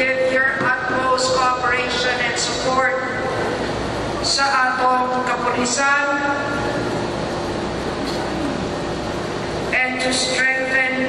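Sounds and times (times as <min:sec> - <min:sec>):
woman speaking into a microphone: 0:00.0 - 0:03.4, 0:04.2 - 0:06.7, 0:09.7 - 0:11.0.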